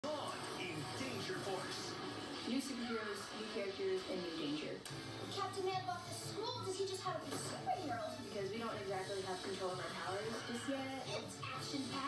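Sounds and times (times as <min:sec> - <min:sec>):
background music from tv: 0:00.0 - 0:12.0
voices from tv speaker: 0:00.0 - 0:12.0.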